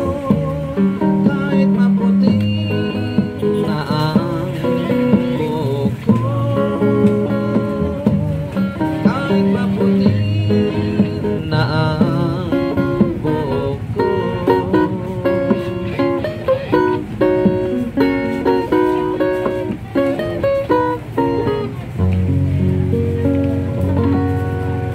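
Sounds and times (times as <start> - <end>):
acoustic guitar strumming: 0.0 - 24.9.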